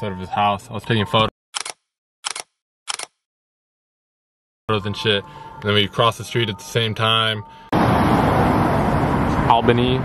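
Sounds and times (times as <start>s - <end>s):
camera shutter clicks: 1.6s - 3.2s.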